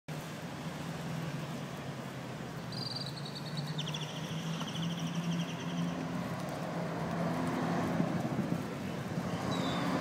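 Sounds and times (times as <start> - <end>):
road traffic passing: 0.1 - 10.0.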